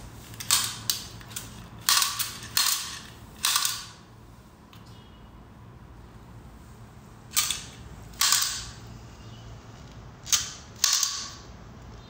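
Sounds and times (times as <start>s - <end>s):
toy gun firing with hiss: 7.3s - 8.8s, 10.3s - 11.4s.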